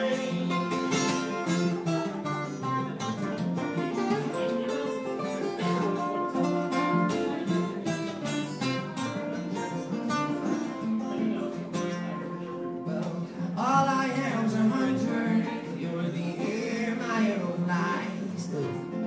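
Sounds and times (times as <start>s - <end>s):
acoustic guitars playing: 0.0s - 19.0s.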